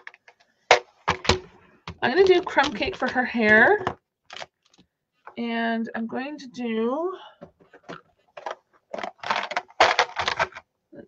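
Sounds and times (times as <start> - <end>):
markers clicking in plastic case: 2.1 - 3.6.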